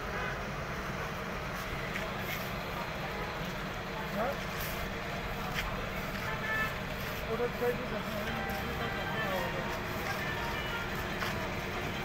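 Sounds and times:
faint voices: 1.6s - 12.0s.

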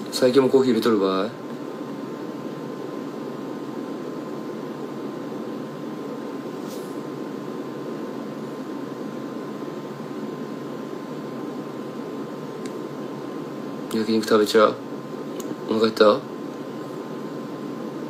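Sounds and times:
low room hiss: 0.0s - 18.0s.

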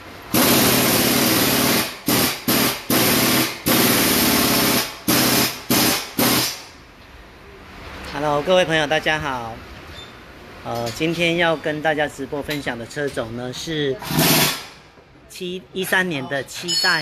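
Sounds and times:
pneumatic impact wrench: 0.3s - 6.8s, 14.0s - 14.9s.

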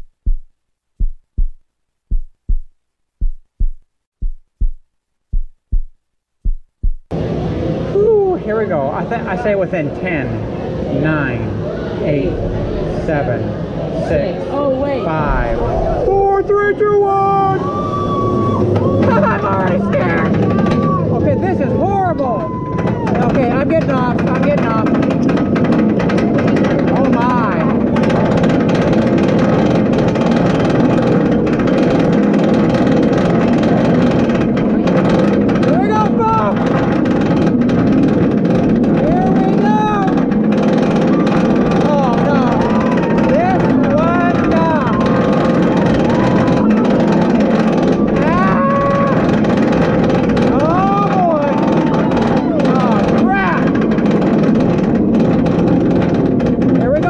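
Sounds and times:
roller coaster lift rattling: 8.8s - 57.0s.

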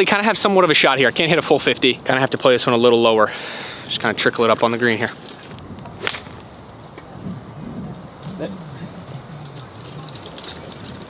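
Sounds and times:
golf club striking ball: 5.8s - 7.2s.

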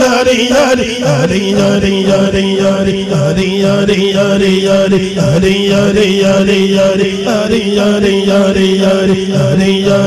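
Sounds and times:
man chanting into a microphone: 0.0s - 10.0s.

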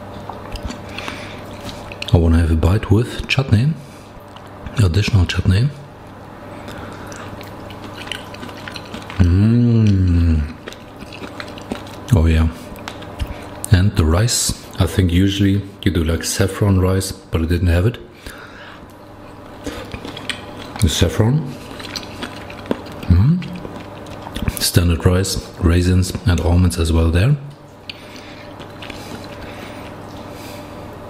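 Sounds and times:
man chewing food: 0.0s - 2.4s, 3.9s - 5.2s, 6.0s - 13.8s, 18.2s - 26.6s, 27.5s - 31.0s
man speaking: 2.1s - 3.8s, 4.7s - 5.8s, 9.2s - 10.6s, 12.1s - 12.6s, 13.7s - 18.1s, 20.8s - 21.6s, 23.1s - 23.6s, 24.6s - 27.5s.

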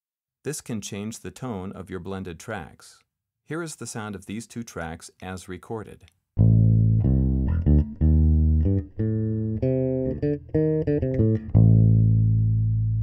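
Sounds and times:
electric bass guitar riff: 6.4s - 13.0s.

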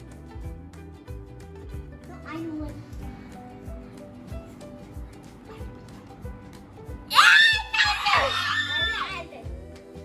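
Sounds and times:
background music: 0.0s - 10.0s
girls shrieking with laughter: 7.1s - 9.3s.

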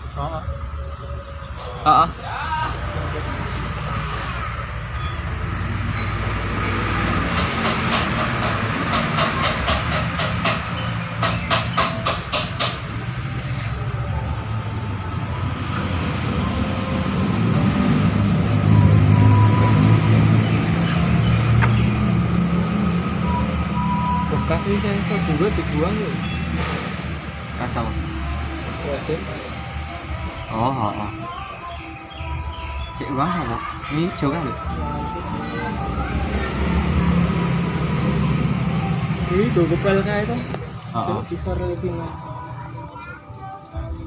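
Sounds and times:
motor humming: 2.6s - 44.0s
wire brush scrubbing: 2.8s - 19.3s, 32.6s - 44.0s.

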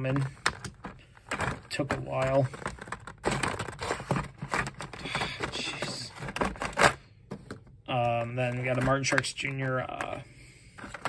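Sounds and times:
plastic packs scraping and rustling: 0.0s - 7.0s, 7.9s - 11.0s.

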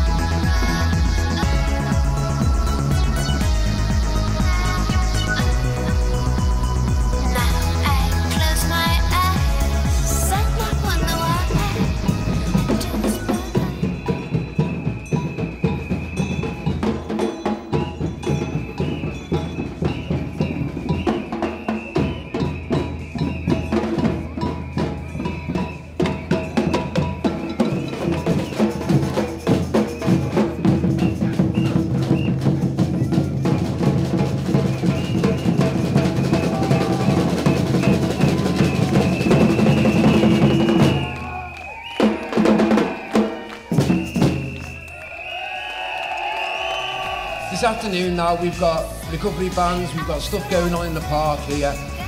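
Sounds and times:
marching drum band: 0.0s - 52.0s.

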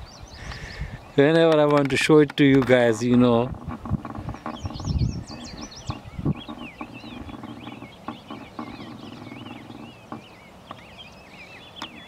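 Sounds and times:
songbirds chirping: 0.0s - 12.0s.

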